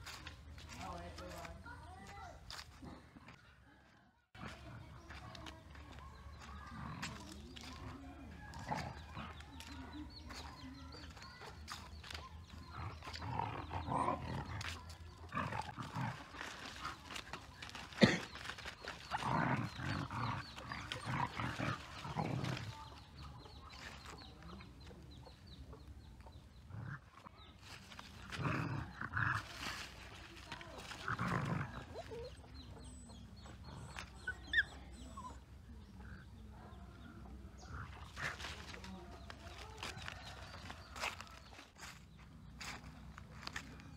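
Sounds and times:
dry leaves rustling: 0:00.0 - 0:02.8, 0:04.4 - 0:24.8, 0:27.6 - 0:32.2, 0:37.7 - 0:43.9
dogs growling and snarling: 0:02.4 - 0:03.4, 0:04.3 - 0:43.9.

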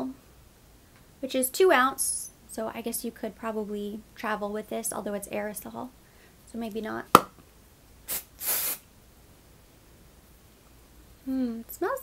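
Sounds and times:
aerosol spray hissing: 0:08.1 - 0:08.8.

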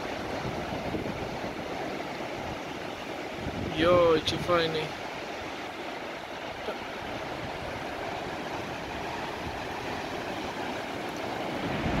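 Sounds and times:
waves washing up a beach: 0:00.0 - 0:12.0.

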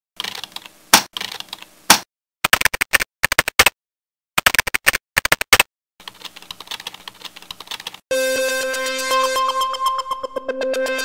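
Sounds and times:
computer keyboard typing: 0:00.2 - 0:01.7, 0:02.5 - 0:03.7, 0:04.4 - 0:08.0.

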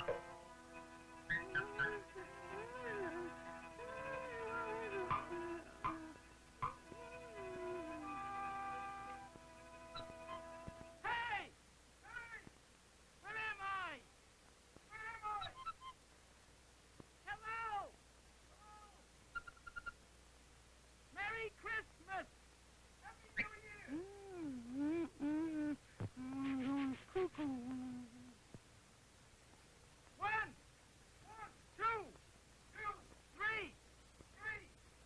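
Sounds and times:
person humming: 0:00.0 - 0:11.0, 0:23.8 - 0:28.4
cartoon character wailing: 0:01.3 - 0:06.2.

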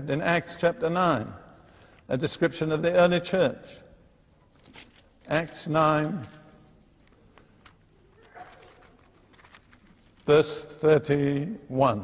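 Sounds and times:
soft clicks and rustles of pages: 0:01.5 - 0:02.1, 0:04.3 - 0:10.5.

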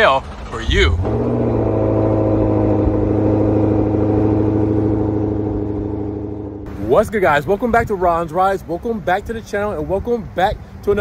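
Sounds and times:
car engine running: 0:00.0 - 0:07.0.

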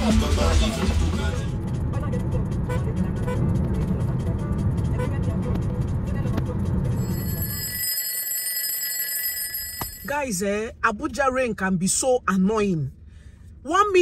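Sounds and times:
car road and engine rumble: 0:00.0 - 0:07.8, 0:09.9 - 0:14.0
alarm clock ringing: 0:07.0 - 0:10.2.

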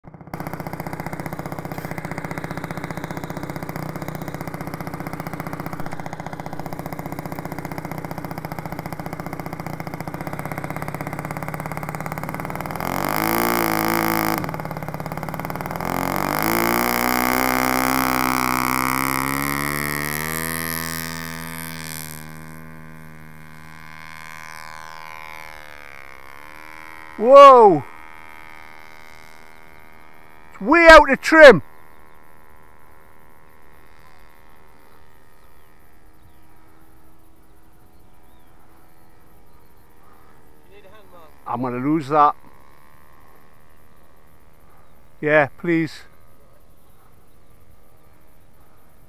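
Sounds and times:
model plane engine idling and revving: 0:00.0 - 0:49.0.

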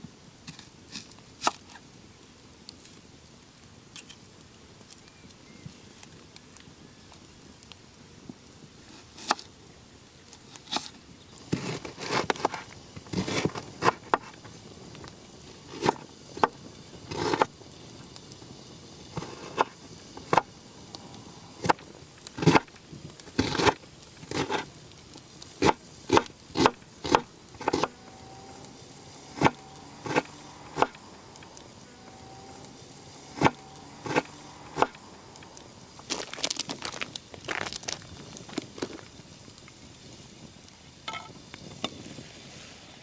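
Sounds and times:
knife slicing onion on board: 0:25.6 - 0:28.0.

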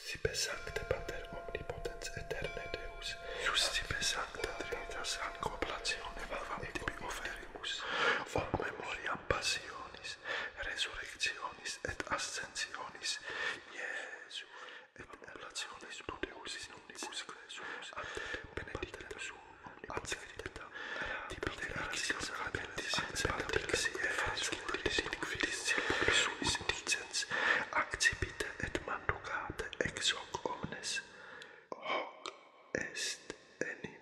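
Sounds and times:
person whispering prayers: 0:00.0 - 0:34.0.

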